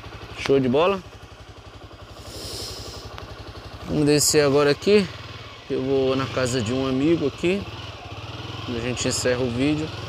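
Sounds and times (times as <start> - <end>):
motorcycle engine running: 0.0 - 10.0.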